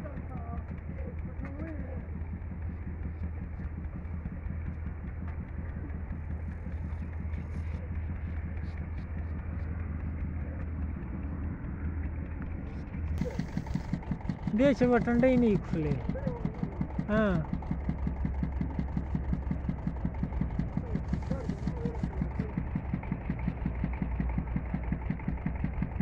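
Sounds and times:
engine idling: 0.0 - 26.0.

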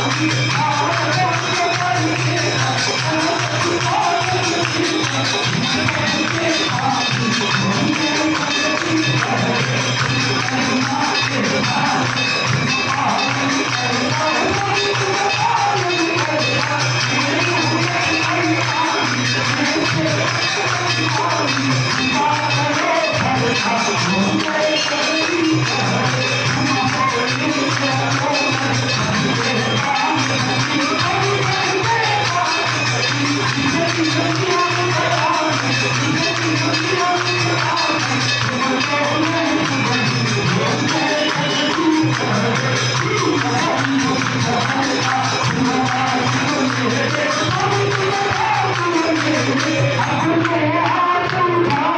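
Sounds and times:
crowd singing a hymn: 0.0 - 51.9
jingling percussion: 0.0 - 51.9.

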